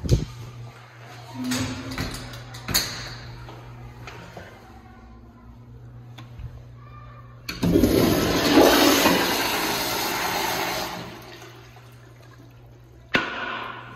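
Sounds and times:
water rushing through toilet bowl: 0:07.6 - 0:12.7.

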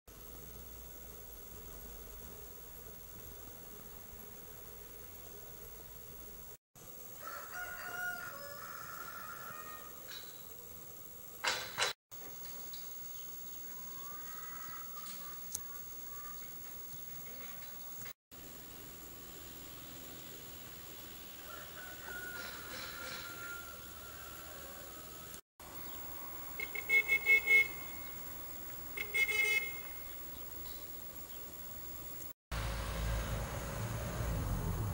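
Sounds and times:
car horn beeping: 0:26.6 - 0:28.0, 0:29.0 - 0:30.0.

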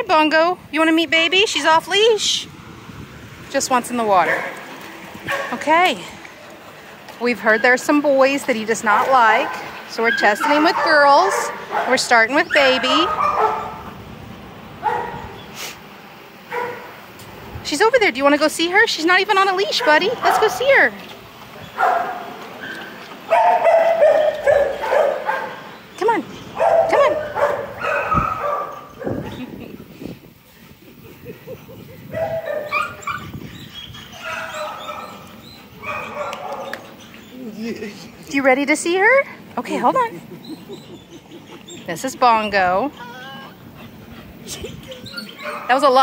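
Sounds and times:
dog whining: 0:10.0 - 0:11.0, 0:12.4 - 0:13.8, 0:32.0 - 0:37.5, 0:40.3 - 0:42.0, 0:42.6 - 0:45.7.

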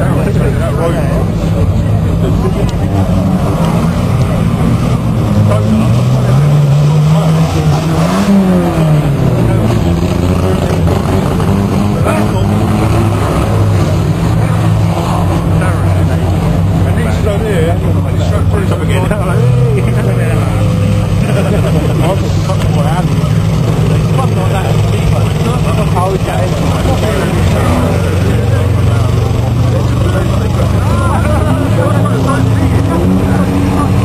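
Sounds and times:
racing car engines revving: 0:00.0 - 0:34.0.

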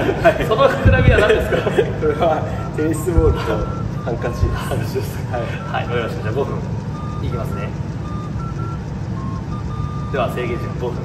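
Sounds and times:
steady low rumble: 0:00.0 - 0:11.0
faint short electronic beeps: 0:02.6 - 0:11.0.

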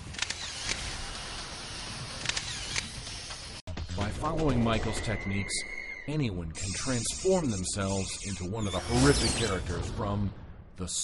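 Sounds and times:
sharp clicks: 0:00.0 - 0:00.9, 0:02.2 - 0:03.2.

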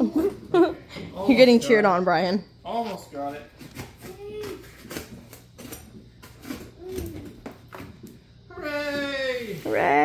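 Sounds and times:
tape and cardboard scraping: 0:03.6 - 0:08.1.

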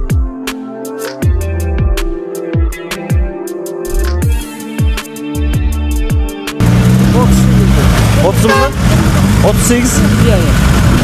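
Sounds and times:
vehicle engine idling: 0:06.6 - 0:11.0.

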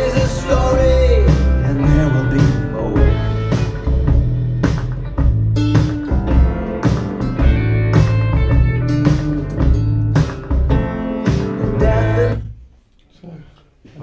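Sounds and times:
music with a steady beat: 0:00.0 - 0:12.6.

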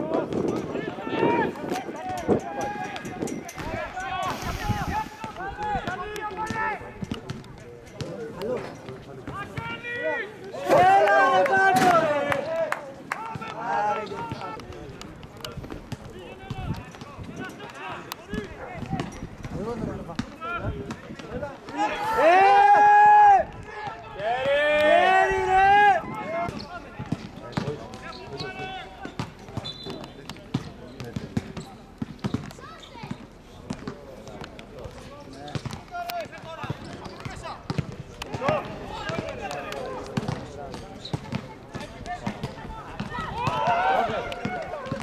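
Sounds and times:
footballers shouting: 0:00.0 - 0:07.1, 0:09.3 - 0:14.7, 0:20.2 - 0:29.7, 0:35.8 - 0:45.0
ball being kicked: 0:34.8 - 0:39.4.

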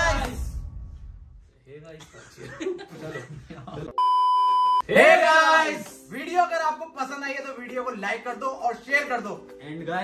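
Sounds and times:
high electronic beep: 0:04.0 - 0:04.9.

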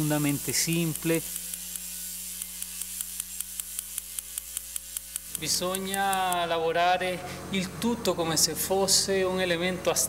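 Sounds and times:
electrical hum and hiss: 0:00.0 - 0:10.0.

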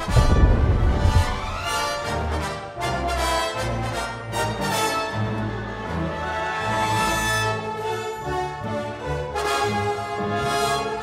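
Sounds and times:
orchestral brass chords: 0:00.0 - 0:11.0.

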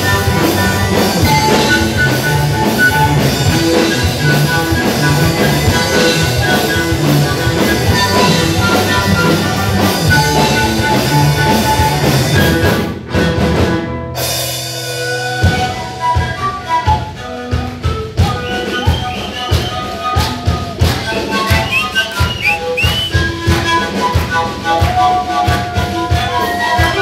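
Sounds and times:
small wind instrument melody: 0:00.0 - 0:12.9, 0:14.7 - 0:27.0
drum kit beat: 0:00.0 - 0:27.0
electric guitar: 0:00.0 - 0:27.0
live band playing: 0:00.0 - 0:27.0.

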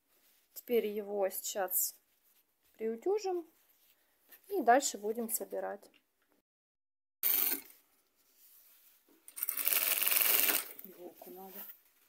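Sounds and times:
sewing machine stitching: 0:09.4 - 0:10.8.

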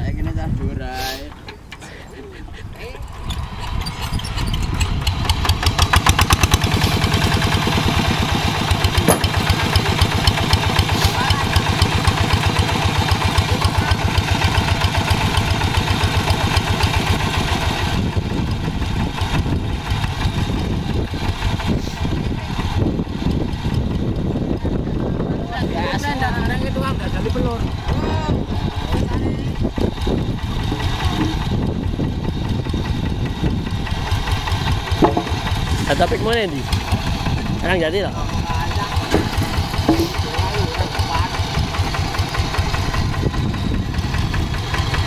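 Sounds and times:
diesel engine starting and running: 0:00.0 - 0:45.0.

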